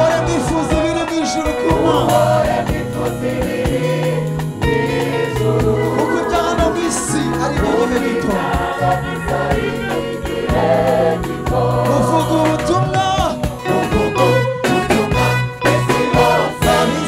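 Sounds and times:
bass line and steady beat: 0.0 - 17.0
gospel choir singing: 0.0 - 17.0
lead singer through loudspeakers: 0.0 - 17.0.

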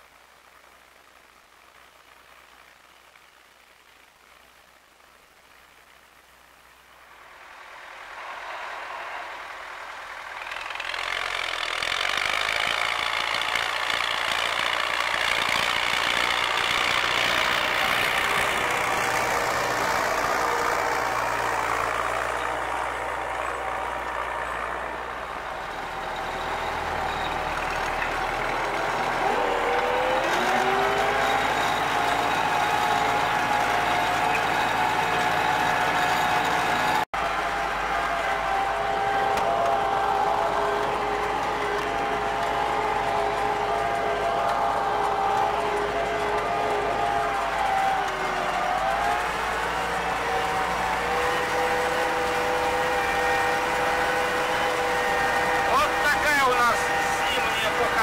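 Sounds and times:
tractor diesel engine under load: 7.3 - 58.0.

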